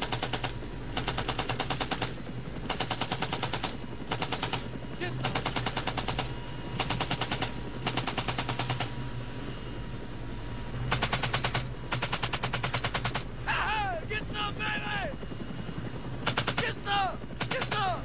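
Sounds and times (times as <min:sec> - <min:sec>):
machine-gun fire bursts: 0:00.0 - 0:08.9, 0:10.9 - 0:13.3, 0:16.2 - 0:18.0
helicopter drone: 0:00.0 - 0:18.0
man yelling: 0:13.5 - 0:15.2, 0:16.5 - 0:18.0.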